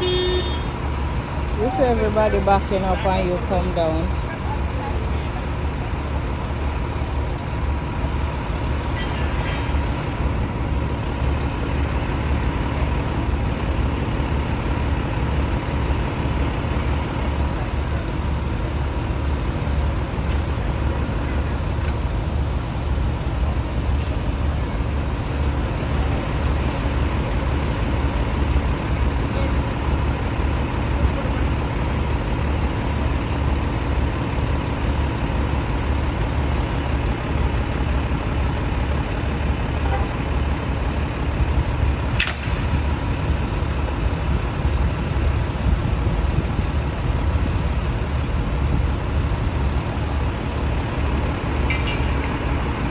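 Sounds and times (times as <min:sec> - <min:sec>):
diesel engines idling: 0:00.0 - 0:52.9.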